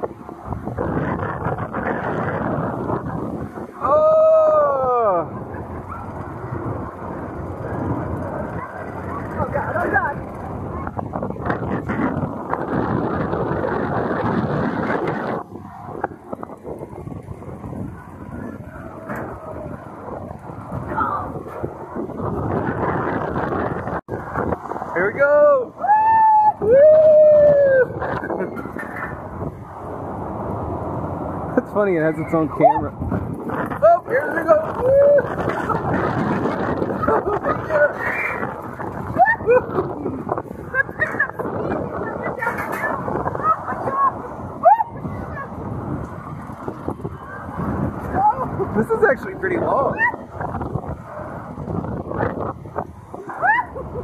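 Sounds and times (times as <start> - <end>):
roller coaster car on steel track: 0.0 - 54.0
wind rushing over microphone: 0.0 - 54.0
riders whooping: 0.6 - 31.5, 32.2 - 48.9, 49.6 - 54.0.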